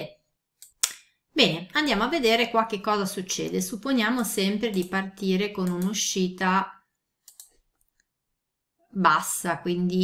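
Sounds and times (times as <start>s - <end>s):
faint computer mouse clicks: 7.2s - 8.1s.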